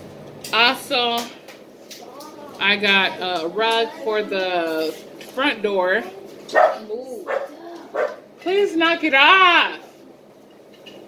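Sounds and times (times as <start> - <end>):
dog barking: 6.5 - 8.2.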